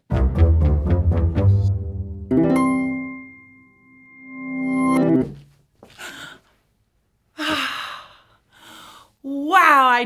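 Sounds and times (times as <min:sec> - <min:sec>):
woman exhaling breathily: 0:07.4 - 0:09.1.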